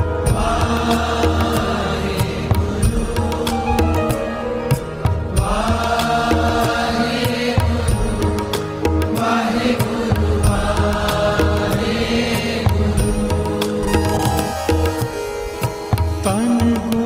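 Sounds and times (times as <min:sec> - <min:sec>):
steady percussion beat: 0:00.0 - 0:17.0.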